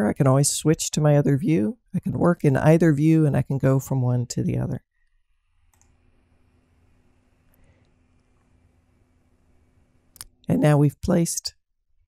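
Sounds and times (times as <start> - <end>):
computer mouse click: 5.7 - 6.0.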